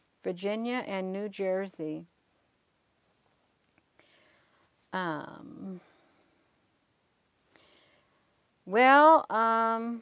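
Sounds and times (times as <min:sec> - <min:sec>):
faint scratchy rustling: 0:00.0 - 0:10.0
woman saying um: 0:00.3 - 0:02.1, 0:05.0 - 0:05.9, 0:08.7 - 0:10.0.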